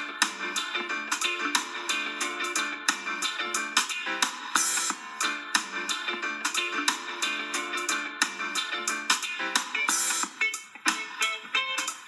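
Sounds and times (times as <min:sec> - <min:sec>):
strummed guitar music: 0:05.6 - 0:12.0.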